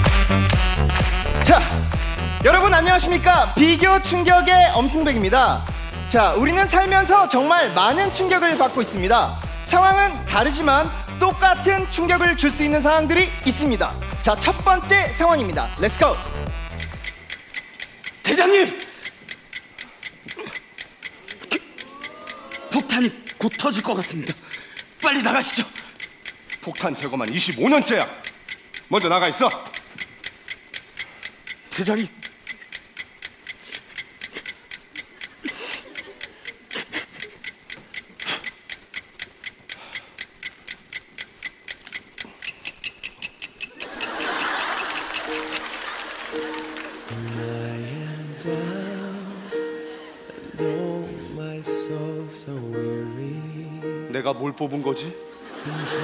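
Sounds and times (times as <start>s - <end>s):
light music: 0.0s - 18.8s, 44.1s - 56.0s
bomb timer ticking: 0.0s - 56.0s.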